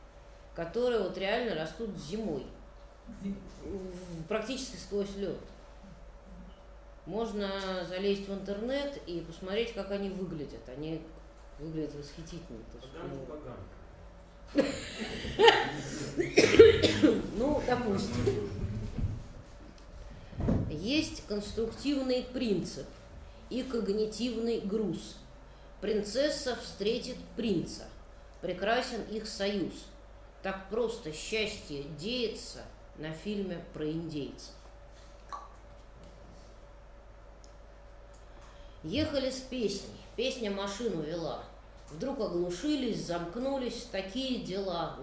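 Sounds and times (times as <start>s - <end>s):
faint steady hum: 0.0s - 45.0s
woman reading aloud: 0.6s - 2.6s, 3.9s - 5.5s, 7.1s - 12.8s, 16.8s - 18.5s, 20.7s - 25.2s, 25.8s - 34.6s, 38.8s - 45.0s
woman laughing: 14.5s - 17.2s
woman coughing: 14.6s - 18.4s.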